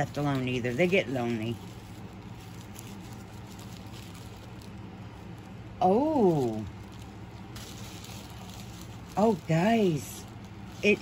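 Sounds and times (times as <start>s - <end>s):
low steady hum: 0.0s - 11.0s
packaging ticks and rustles: 0.0s - 11.0s.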